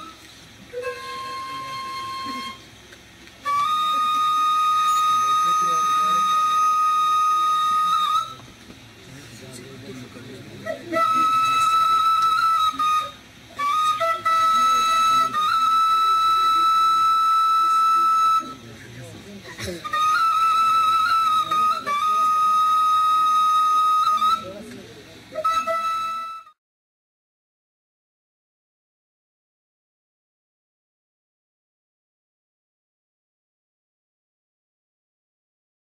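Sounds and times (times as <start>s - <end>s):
wooden flute held note: 0.0s - 2.7s
wooden flute high note: 0.0s - 2.8s, 3.4s - 8.5s, 10.5s - 18.7s, 19.6s - 26.6s
low quiet voices: 0.0s - 26.4s.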